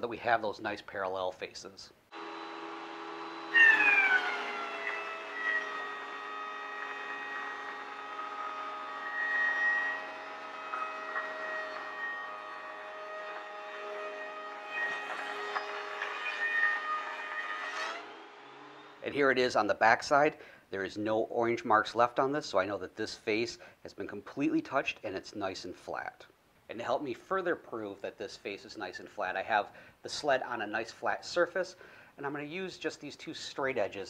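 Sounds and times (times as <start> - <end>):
thickness planer motor whine: 2.1 - 19.0
planer cutting board: 2.2 - 18.1.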